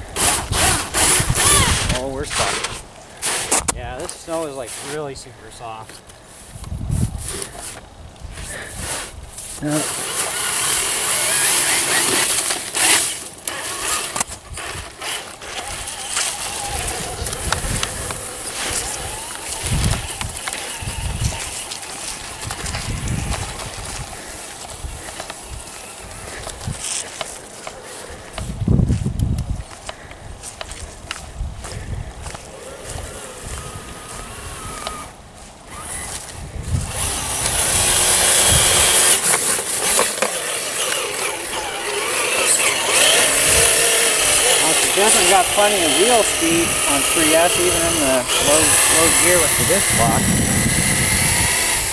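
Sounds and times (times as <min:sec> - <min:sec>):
tyres spinning in snow: 0:00.0 - 0:05.2, 0:06.4 - 0:29.2, 0:32.3 - 0:51.9
electric motor whine: 0:00.1 - 0:02.8, 0:09.6 - 0:27.4, 0:32.2 - 0:51.9.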